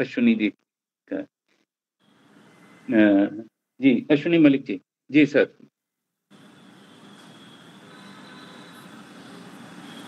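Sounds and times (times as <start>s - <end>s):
faint high whine: 2.0s - 3.5s, 6.3s - 10.0s.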